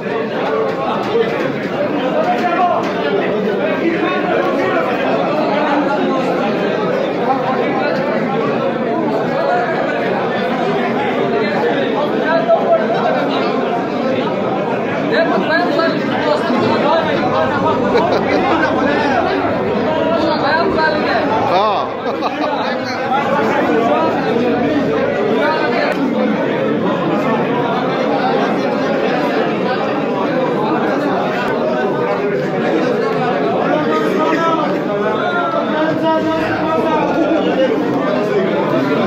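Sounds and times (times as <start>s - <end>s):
men talking at once: 0.0s - 39.0s.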